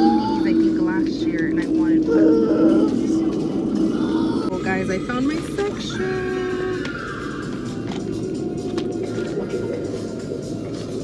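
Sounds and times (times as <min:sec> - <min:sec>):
indistinct voices: 0:00.0 - 0:10.6
low hum: 0:00.0 - 0:11.0.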